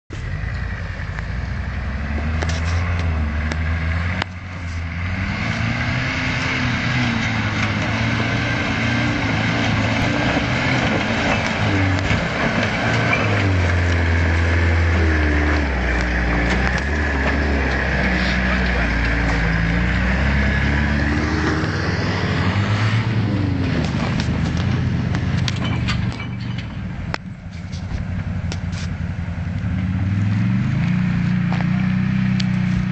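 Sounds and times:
truck engine revving uphill: 0:00.1 - 0:32.9.

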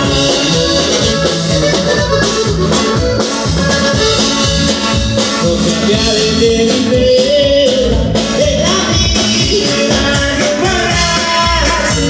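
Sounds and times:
band playing live: 0:00.0 - 0:12.0.

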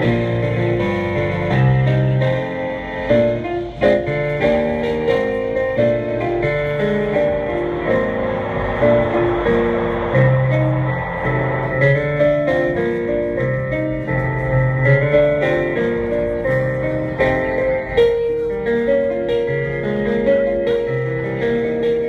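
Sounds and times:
piano chords over bass notes: 0:00.0 - 0:22.0.

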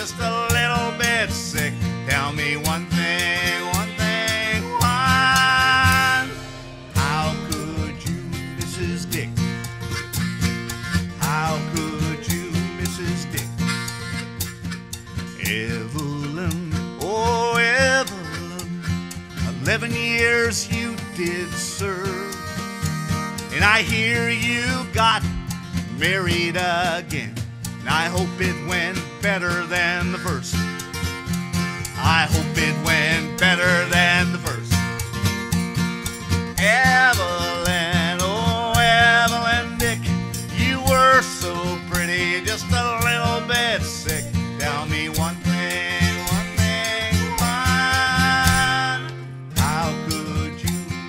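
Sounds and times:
harmonica melody: 0:00.0 - 0:51.0
strummed acoustic guitar: 0:00.0 - 0:51.0.

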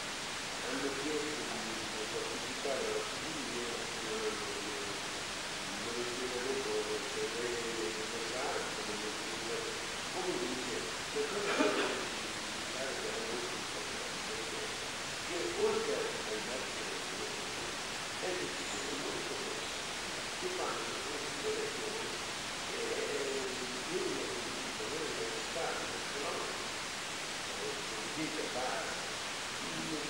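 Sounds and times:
steady hiss: 0:00.0 - 0:30.0
faint muffled voice talking: 0:00.6 - 0:05.0, 0:05.6 - 0:26.7, 0:27.4 - 0:29.0, 0:29.6 - 0:30.0.

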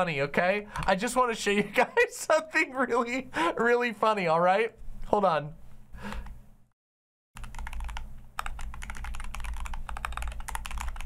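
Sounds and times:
rapid typing on keyboard: 0:07.4 - 0:11.0.

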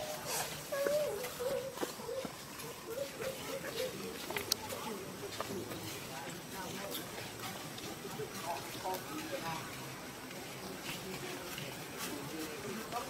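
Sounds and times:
infant monkey whimpering: 0:00.0 - 0:02.3
movement on dry leaves: 0:00.0 - 0:13.0.

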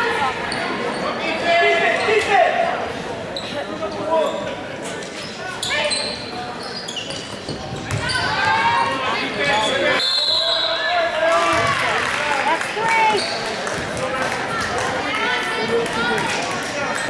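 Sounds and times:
basketball bouncing on hardwood court: 0:07.4 - 0:08.2.

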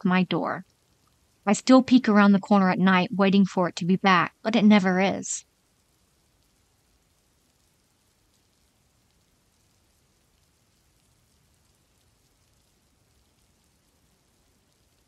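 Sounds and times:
faint hiss: 0:00.0 - 0:03.2, 0:03.8 - 0:15.0.

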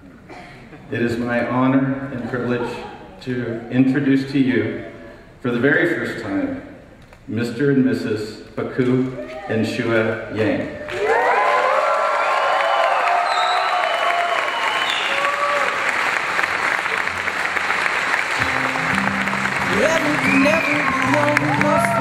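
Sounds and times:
guests applauding and cheering: 0:10.6 - 0:22.0.

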